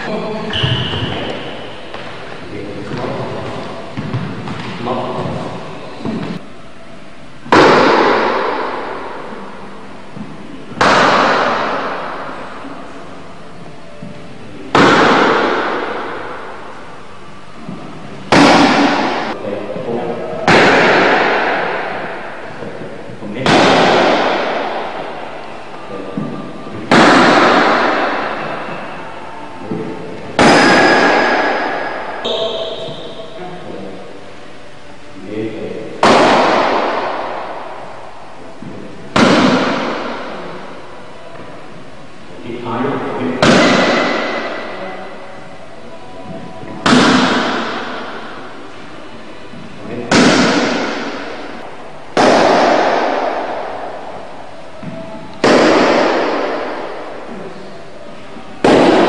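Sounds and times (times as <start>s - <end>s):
strikes on focus mitt echoing: 7.5s - 9.3s, 10.7s - 12.4s, 14.7s - 16.8s, 18.3s - 28.9s, 29.8s - 33.3s, 35.9s - 38.3s, 39.1s - 40.8s, 42.6s - 44.8s, 46.8s - 48.6s, 50.1s - 57.3s, 58.6s - 59.0s.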